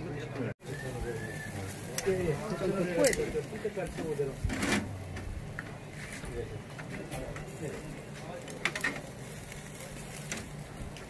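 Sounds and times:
background voices talking: 0.0s - 11.0s.

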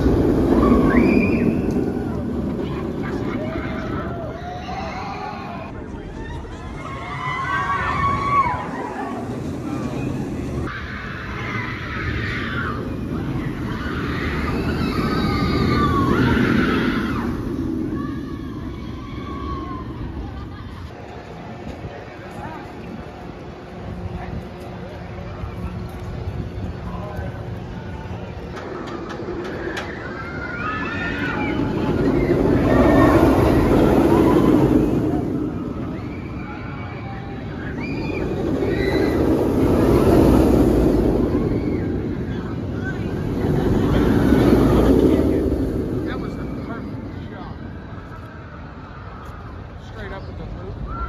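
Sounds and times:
riders screaming: 0.0s - 20.5s, 29.4s - 45.1s
roller coaster train rumbling: 0.0s - 51.0s.

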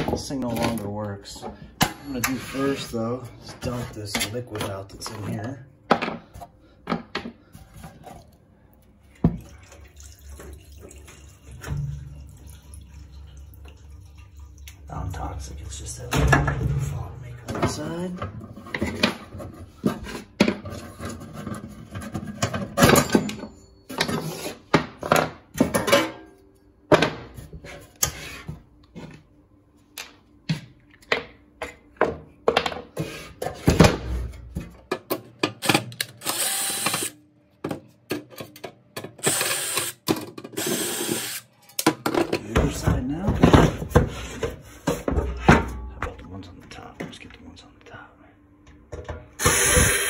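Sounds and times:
cordless drill running: 36.2s - 37.1s, 39.2s - 40.0s, 40.6s - 41.4s, 49.4s - 50.0s.

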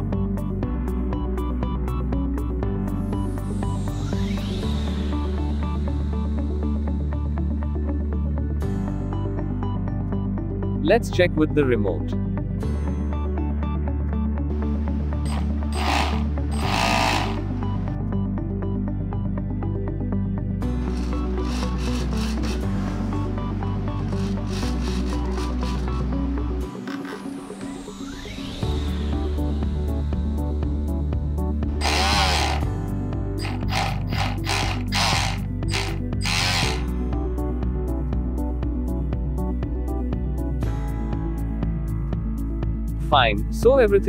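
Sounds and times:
background music: 0.0s - 44.0s
electric motor whirring: 15.3s - 17.7s, 20.8s - 23.0s, 23.9s - 26.0s, 31.8s - 32.7s, 33.4s - 36.9s.

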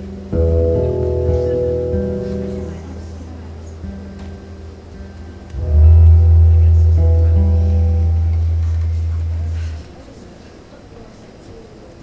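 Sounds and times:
live band with bass and guitars: 0.0s - 9.9s.

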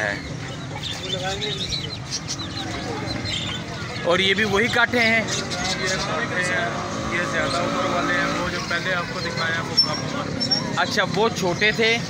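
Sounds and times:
caged birds chirping: 0.0s - 12.0s.

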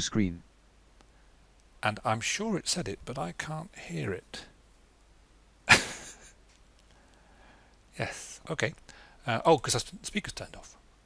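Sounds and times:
man's short breathy laugh: 5.7s - 6.4s.

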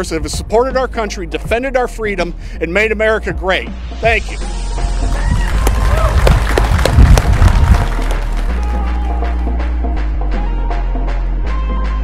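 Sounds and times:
music with steady bass line: 0.0s - 12.0s
people clapping: 5.1s - 9.5s.

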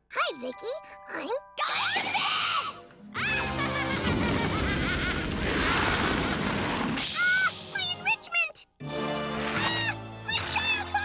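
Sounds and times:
crashing and booming effects: 3.5s - 7.7s.

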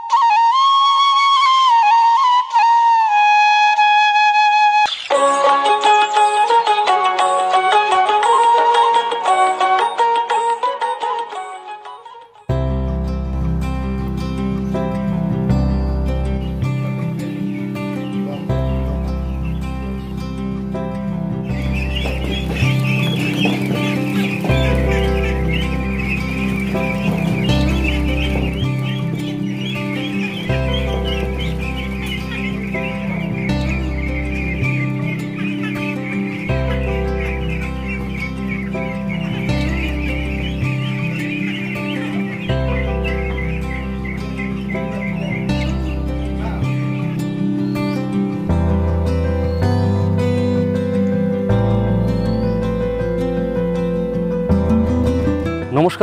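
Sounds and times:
music with slow bass line: 12.5s - 55.7s
ducklings peeping: 16.2s - 20.4s, 21.4s - 48.2s.

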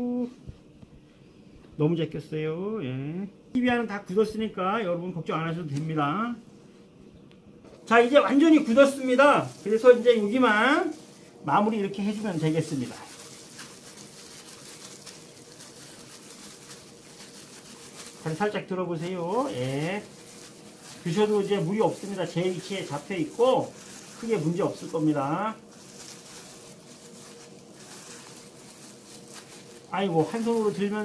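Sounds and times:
faint hum: 0.0s - 31.0s
gloved hands rubbing plaster: 12.1s - 31.0s.

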